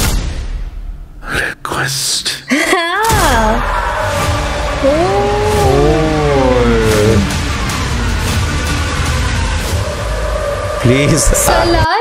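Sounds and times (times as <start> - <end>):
deep low drone: 4.4 - 10.4.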